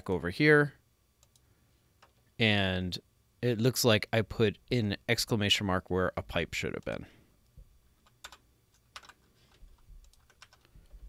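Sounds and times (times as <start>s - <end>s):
computer keyboard keystrokes: 8.0s - 9.2s, 10.0s - 10.7s.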